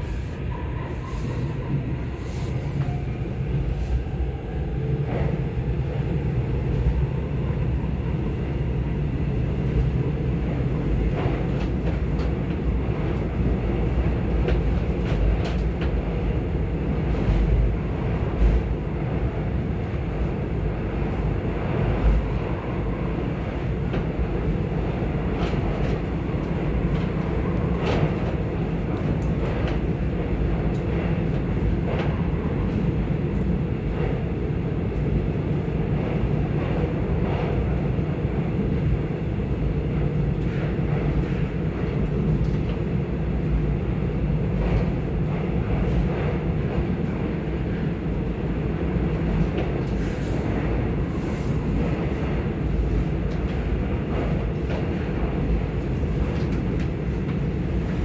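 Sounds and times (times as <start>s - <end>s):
subway train rumbling in tunnel: 0.0s - 58.0s.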